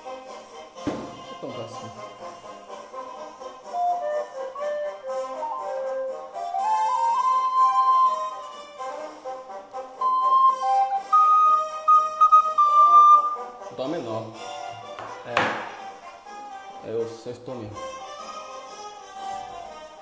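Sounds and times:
accompaniment track: 0:01.4 - 0:16.0
recorder playing melody: 0:02.4 - 0:16.5.

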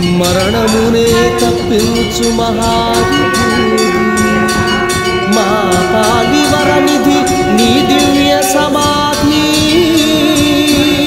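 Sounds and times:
person singing: 0:00.0 - 0:11.0
steady drumbeat: 0:00.0 - 0:11.0
long held sung note: 0:00.2 - 0:11.0.

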